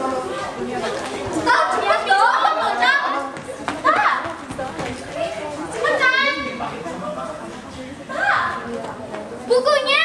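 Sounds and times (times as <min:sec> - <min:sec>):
girls shouting and chattering: 0:00.0 - 0:10.0.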